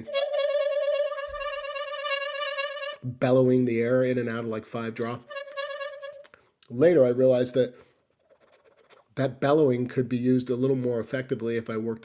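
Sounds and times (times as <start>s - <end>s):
harmonica held note: 0.0s - 3.0s, 5.2s - 6.4s.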